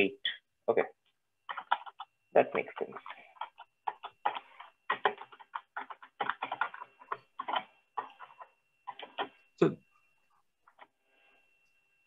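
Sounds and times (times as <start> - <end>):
computer keyboard typing: 1.4 - 9.4, 10.6 - 11.0.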